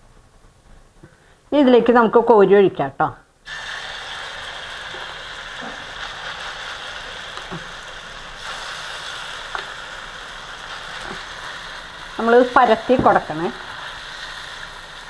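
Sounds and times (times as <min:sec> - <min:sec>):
batter sizzling in hot oil: 0:03.4 - 0:15.0.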